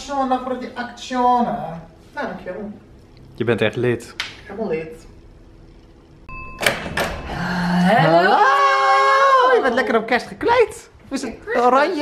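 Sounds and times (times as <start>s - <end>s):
brief high beep: 6.3s - 6.8s.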